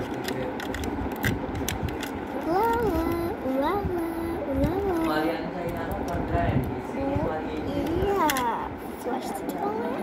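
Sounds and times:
plastic toys clicking and tapping: 0.0 - 3.4, 4.5 - 6.8, 7.6 - 8.6
child singing: 2.4 - 5.1.

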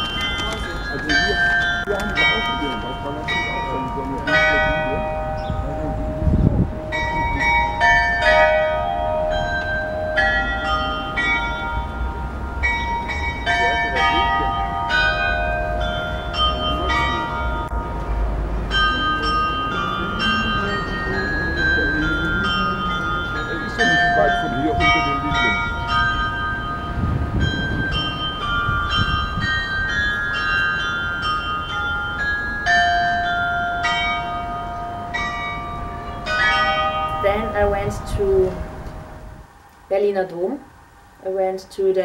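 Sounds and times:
bell-like chime melody: 0.0 - 38.1.

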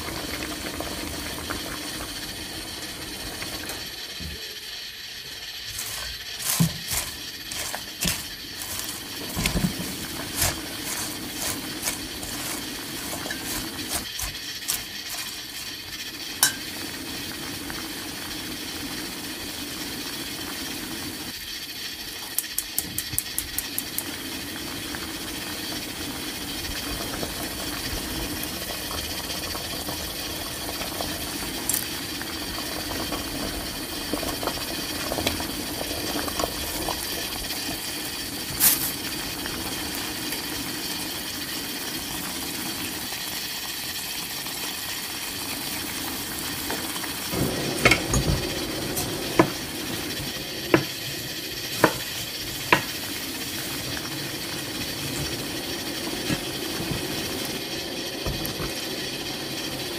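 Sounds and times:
soup bubbling and hissing: 0.0 - 59.9.

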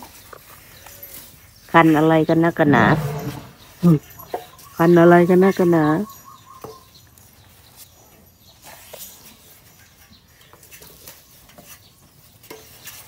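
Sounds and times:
elephant scraping against fence: 0.3 - 4.6.

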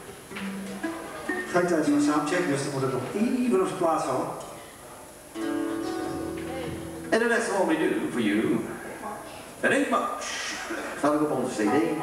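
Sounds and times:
guitar chord ringing: 5.4 - 7.2.

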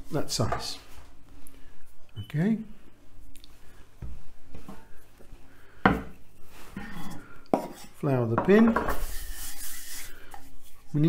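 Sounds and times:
hands rubbing rolling pin: 8.6 - 11.0.

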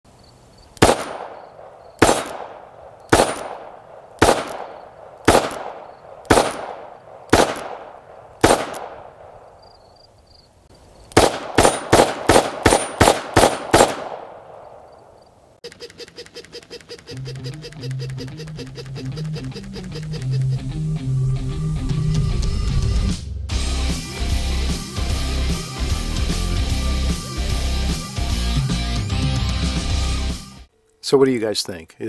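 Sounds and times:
revolver gunshots: 0.8 - 9.7, 11.1 - 15.1
rapid clicking: 15.6 - 20.6.

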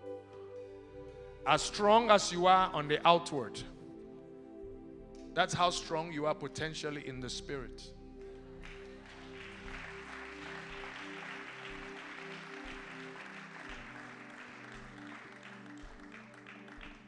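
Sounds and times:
soft background music with chords: 0.0 - 17.0.

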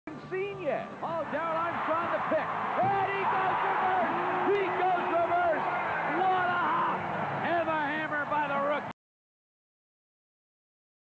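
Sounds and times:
excited man commentating: 0.4 - 8.9
arena crowd noise: 0.5 - 9.0.

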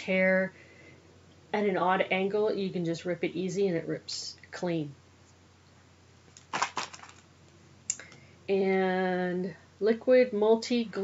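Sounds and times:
plastic packaging crinkling: 6.3 - 7.3.

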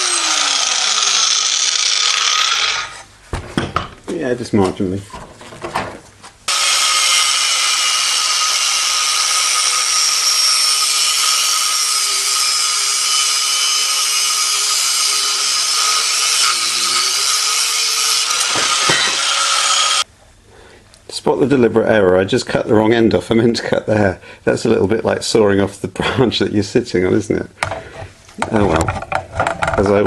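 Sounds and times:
angle grinder cutting steel tube: 0.0 - 3.1, 6.5 - 20.1.

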